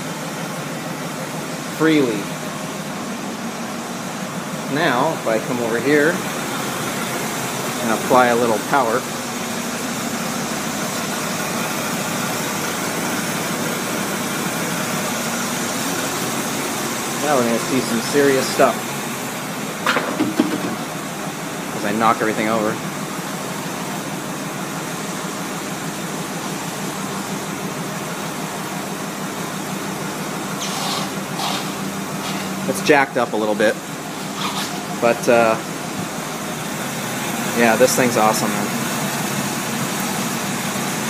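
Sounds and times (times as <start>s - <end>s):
car engine idling: 0.0s - 41.0s
low mechanical hum: 0.0s - 41.0s
even hiss: 30.6s - 32.8s.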